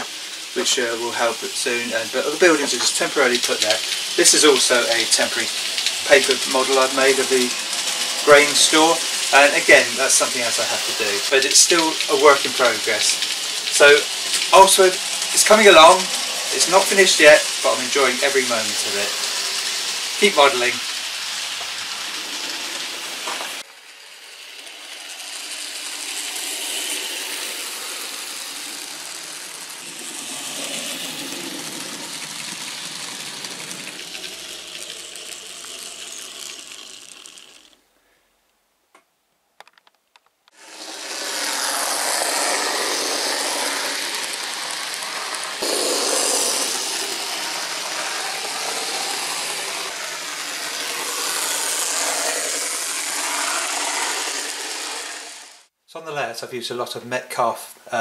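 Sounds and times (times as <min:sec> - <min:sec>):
model train running on track: 0:00.0 - 0:37.8, 0:40.5 - 0:55.7.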